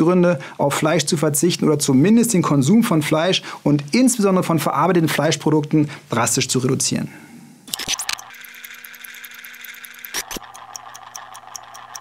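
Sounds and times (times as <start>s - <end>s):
fast even ticking: 7.8s - 12.0s.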